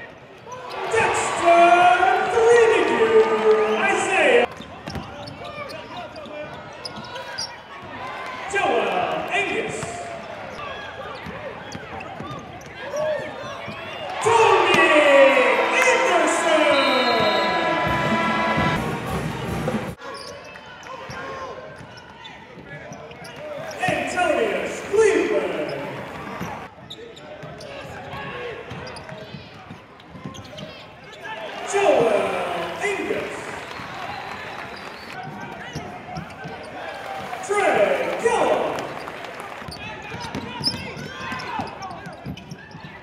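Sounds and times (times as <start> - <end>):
players and spectators voices: 0.0 - 43.0
basketball bouncing on court: 4.6 - 5.4.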